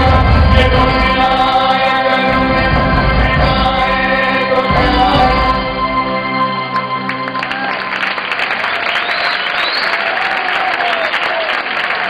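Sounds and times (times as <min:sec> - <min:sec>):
man singing: 0:00.0 - 0:05.9
live stage orchestra: 0:00.0 - 0:11.1.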